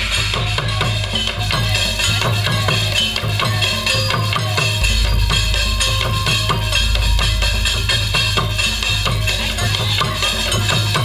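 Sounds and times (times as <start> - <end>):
quick regular drum beat: 0.0 - 11.0.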